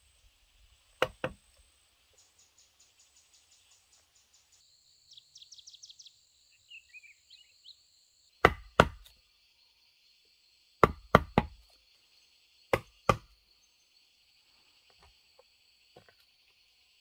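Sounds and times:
bird chirping: 0.0s - 8.0s
insects buzzing: 0.0s - 17.0s
tool knocking on wood: 1.0s - 1.4s, 8.4s - 9.1s, 10.8s - 11.6s.

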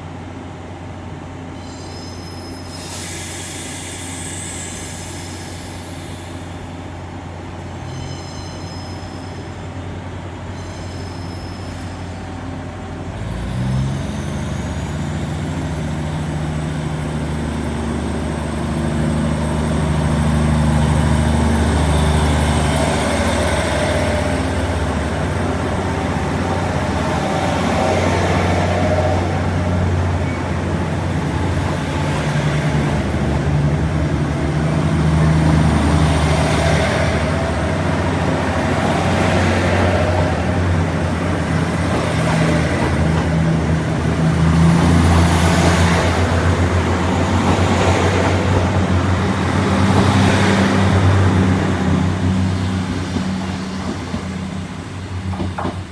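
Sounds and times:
train engines revving: 0.0s - 55.9s
train cars rolling past: 1.6s - 55.9s.

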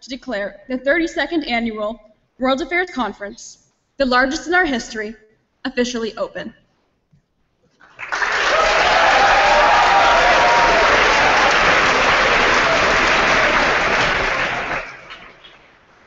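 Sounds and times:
audience applauding: 7.8s - 15.8s.

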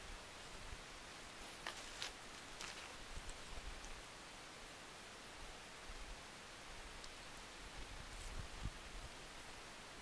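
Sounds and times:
faint rustling on dry leaves: 0.6s - 4.1s, 6.0s - 9.6s.

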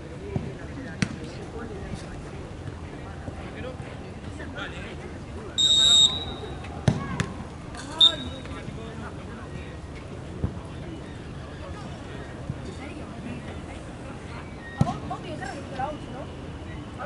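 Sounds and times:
referee's whistle blast: 5.6s - 6.6s, 7.9s - 8.5s.

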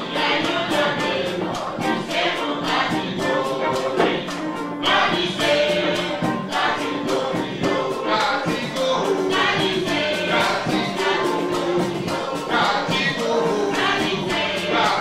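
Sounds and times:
female backing singers: 0.0s - 15.0s
live band playing: 0.0s - 15.0s
steady percussion beat: 0.0s - 15.0s.

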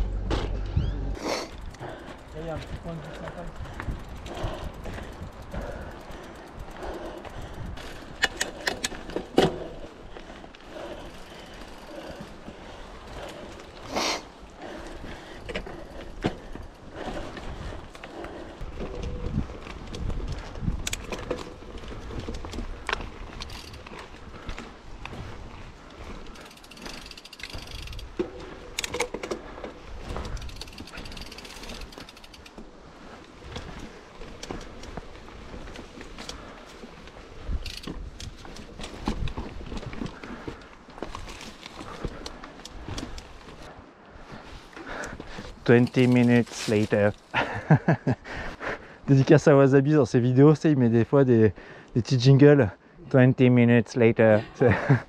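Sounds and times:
bike chain and frame rattling: 0.0s - 48.1s
wind on microphone: 18.6s - 21.2s.

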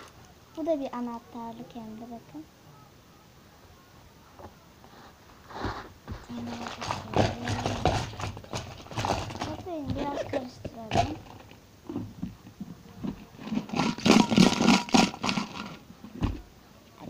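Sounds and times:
objects rustling and knocking: 4.4s - 17.0s.

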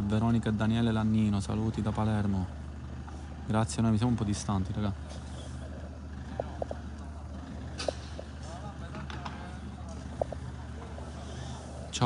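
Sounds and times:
distant voices: 0.0s - 12.0s
steady low hum: 0.0s - 12.0s.

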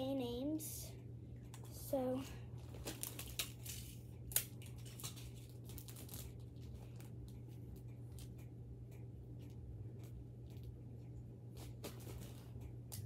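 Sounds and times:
items being handled: 1.4s - 8.5s, 9.4s - 13.0s.

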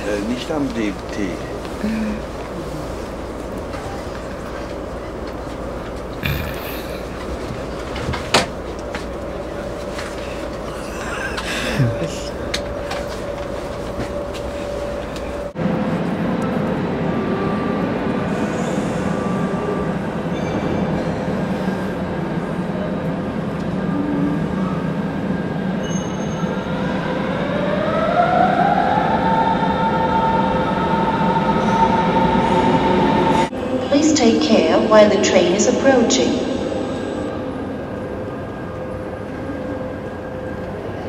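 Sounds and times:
train carriage ride noise: 0.0s - 41.0s
train rumbling in station hall: 0.0s - 41.0s.

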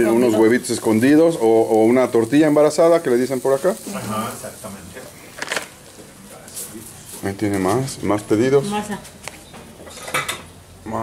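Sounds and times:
dishes clattering: 9.6s - 10.5s.

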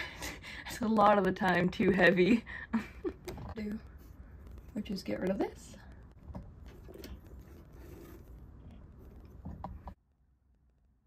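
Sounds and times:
light handling clicks and scrapes: 6.3s - 10.0s.

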